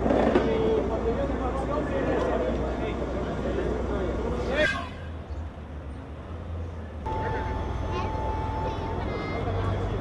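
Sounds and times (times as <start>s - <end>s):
thin steady tone: 7.1s - 9.8s.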